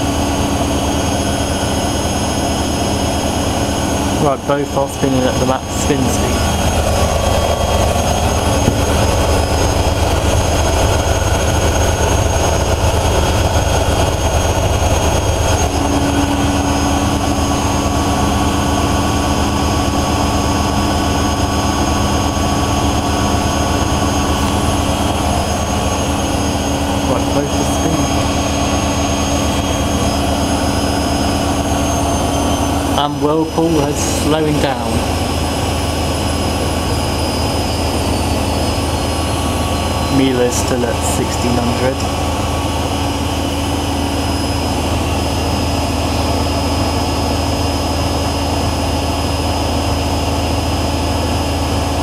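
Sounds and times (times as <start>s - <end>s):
steady whining tones: 0.0s - 52.0s
washing machines spinning: 0.0s - 52.0s.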